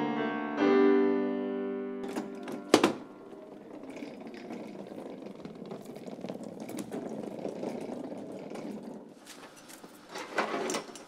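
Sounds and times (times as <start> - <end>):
case clicks and knocks: 2.0 - 8.7
casters rolling on hard floor: 2.0 - 11.0.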